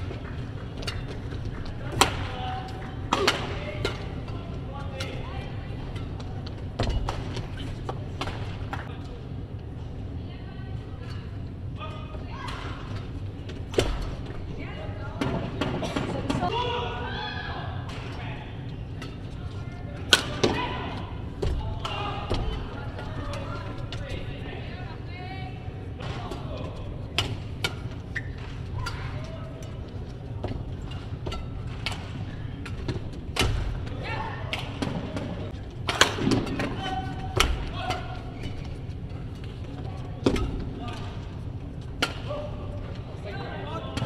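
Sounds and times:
low hall hum: 0.0 - 44.0
rackets hitting shuttlecock: 1.9 - 5.2, 34.5 - 38.2
shoe squeaks: 28.0 - 29.2.

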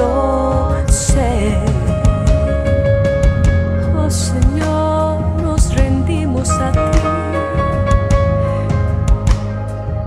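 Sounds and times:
bass: 0.0 - 10.0
piano chords: 0.0 - 10.0
drum hits: 0.9 - 4.9.

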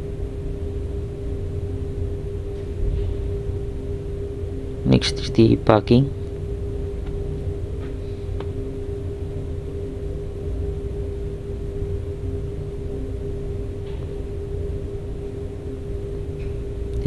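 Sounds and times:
machinery hum: 0.0 - 17.0.

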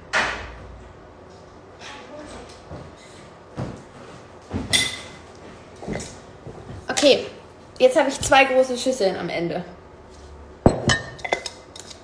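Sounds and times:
ceramic bowl clinking: 10.7 - 12.0.

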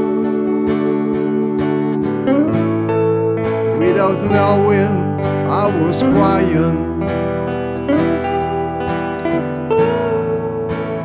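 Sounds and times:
acoustic guitar strumming: 0.0 - 11.0
electric guitar held notes: 0.0 - 11.0.

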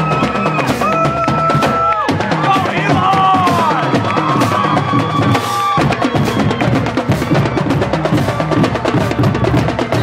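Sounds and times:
bass drums: 0.0 - 10.0
snare drums: 0.0 - 10.0
tenor drums: 0.0 - 10.0.

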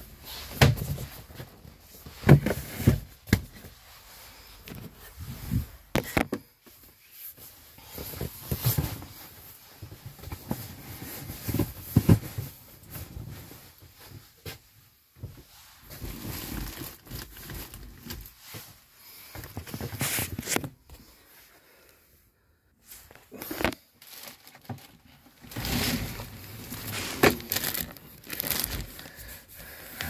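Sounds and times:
rustling: 22.8 - 30.0.

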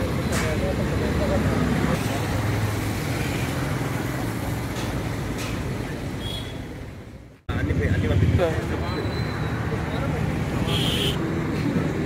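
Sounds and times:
road traffic noise: 0.0 - 12.0.

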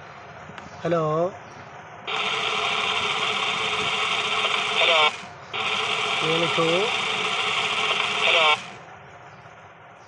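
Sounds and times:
toy whirring hiss: 2.1 - 8.8.

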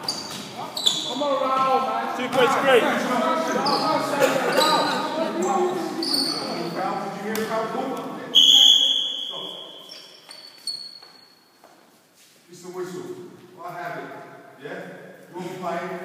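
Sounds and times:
shoes squeaking on court: 0.0 - 1.6, 3.4 - 6.8, 8.5 - 12.2
voices: 0.6 - 8.6
referee's whistle blast: 8.3 - 9.9.

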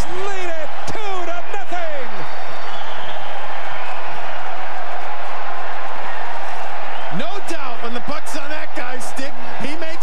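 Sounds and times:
arena crowd cheering and applauding: 0.0 - 10.0.

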